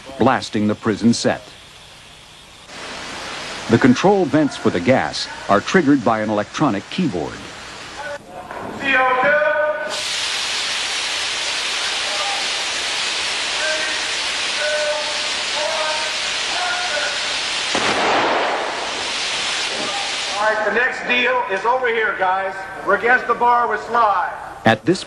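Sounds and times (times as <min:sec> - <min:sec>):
gas blasting from vents: 0:00.0 - 0:23.2.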